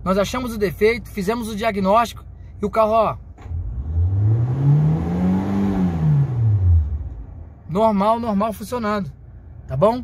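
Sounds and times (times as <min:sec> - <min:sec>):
car engine revving: 0:03.4 - 0:07.6.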